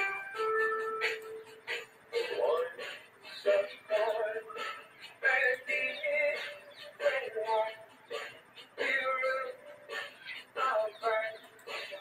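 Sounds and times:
person singing a song: 0.0 - 12.0.

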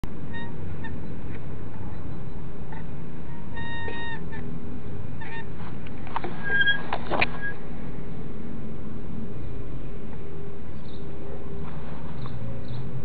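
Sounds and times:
steady low rumble: 0.0 - 13.0
honking calls: 1.8 - 5.6.

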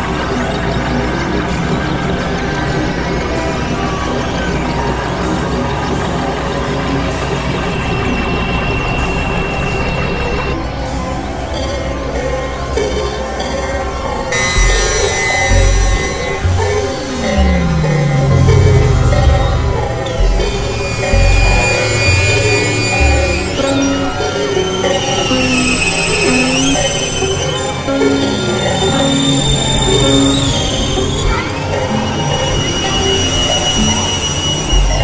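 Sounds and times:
droning noise music: 0.0 - 35.0
steady high tone: 14.2 - 35.0
low bass notes: 14.4 - 24.3.

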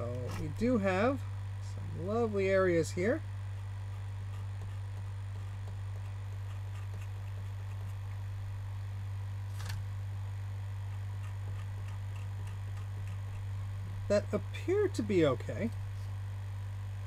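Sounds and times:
low electrical hum: 0.0 - 17.0.

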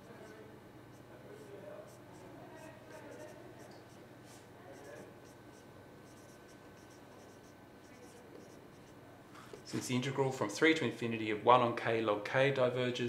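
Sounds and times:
marker pen writing on whiteboard: 0.0 - 9.8.

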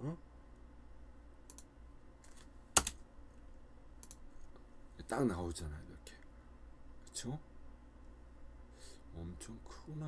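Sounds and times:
steady low hum: 0.0 - 10.0
computer mouse clicks: 1.4 - 3.0, 4.0 - 4.2.

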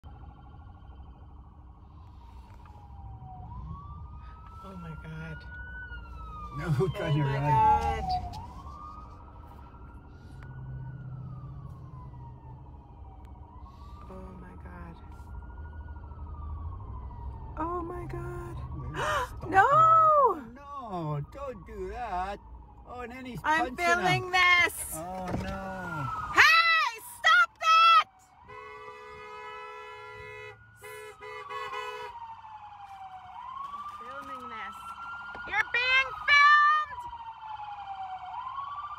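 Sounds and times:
low rumble of car: 0.0 - 38.9
police siren wailing: 0.0 - 38.9
car horn honking: 28.4 - 32.2.

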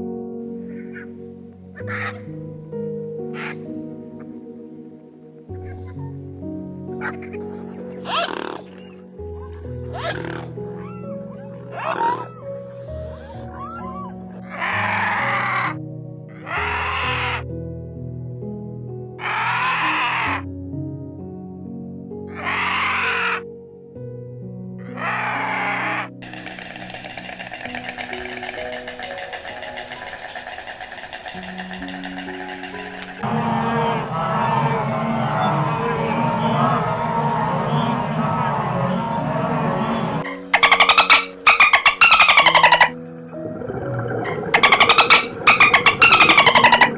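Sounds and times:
gentle background music: 0.0 - 46.9
harsh animal calls: 1.8 - 2.3, 7.0 - 17.4, 19.2 - 20.5, 22.3 - 23.4, 24.8 - 39.2, 40.0 - 46.9
dense rasping noise: 26.2 - 33.6.

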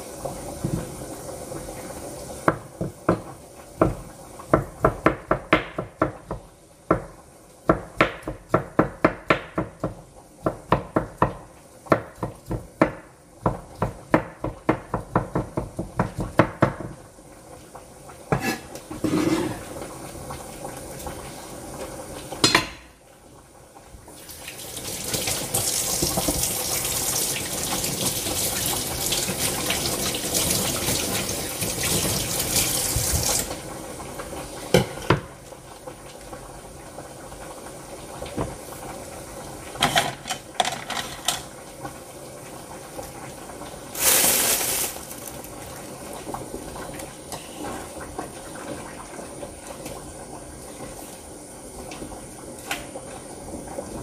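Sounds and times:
dishes clinking: 18.4 - 19.6, 34.8 - 35.2, 39.8 - 41.5.

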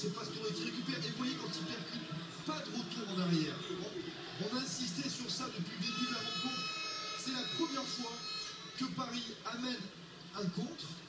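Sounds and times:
football match audio: 0.0 - 11.0.

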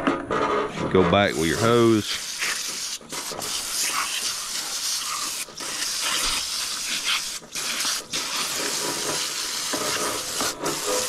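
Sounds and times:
hose nozzle water spraying: 1.2 - 11.0.

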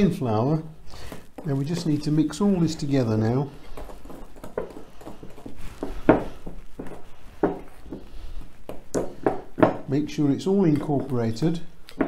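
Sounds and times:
wooden spoon stirring batter: 0.3 - 12.0.

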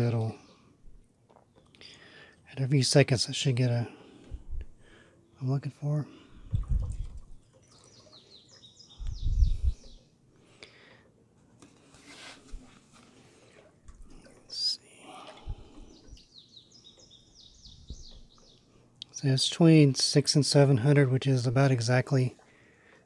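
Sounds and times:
songbird singing: 5.3 - 10.2, 14.0 - 20.2.

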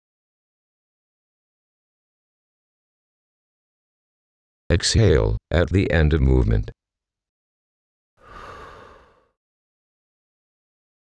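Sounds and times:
breathy exhale: 8.2 - 9.4.

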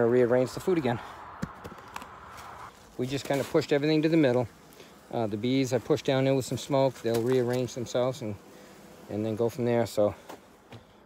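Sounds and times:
hive tool scraping sugar: 2.7 - 10.8.

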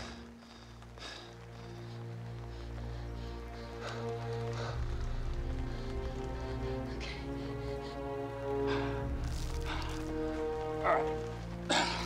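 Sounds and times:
film music with low held chords: 0.0 - 12.0.

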